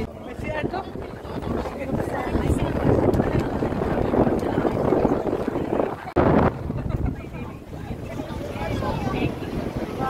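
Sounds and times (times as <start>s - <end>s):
boat running noise: 0.0s - 10.0s
wind buffeting microphone: 0.0s - 10.0s.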